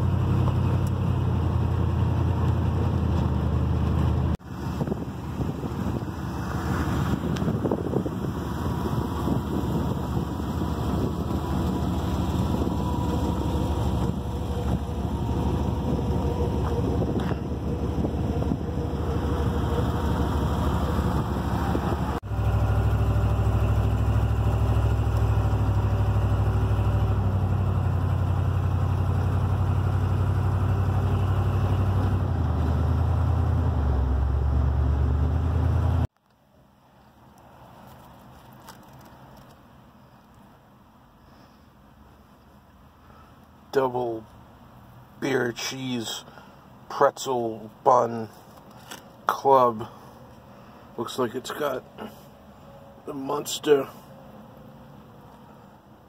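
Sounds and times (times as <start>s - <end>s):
pickup truck engine: 0.0s - 36.2s.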